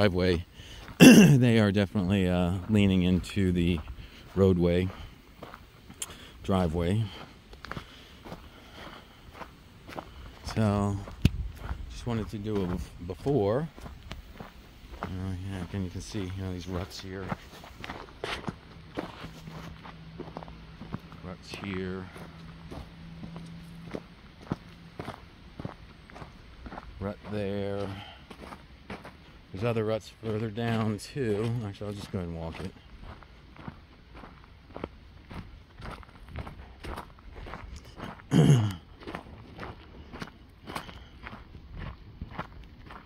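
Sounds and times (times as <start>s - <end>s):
footsteps on gravel: 0.0s - 43.0s
short loud vocal sound: 1.0s - 1.4s.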